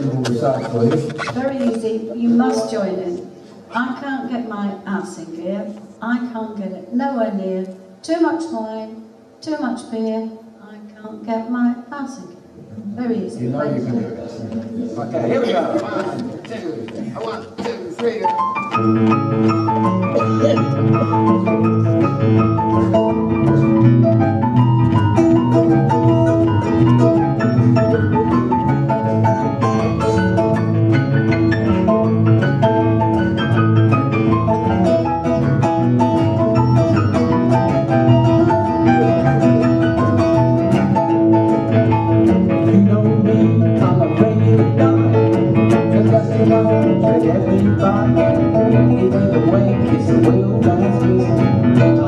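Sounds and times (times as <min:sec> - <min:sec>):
live blues band playing: 0:00.0 - 0:04.4, 0:18.2 - 0:52.0
person singing: 0:25.5 - 0:30.6, 0:42.2 - 0:52.0.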